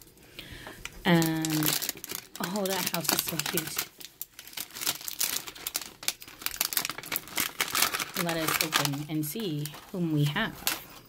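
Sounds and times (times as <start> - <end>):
plastic wrapper crinkling: 0.7 - 11.0.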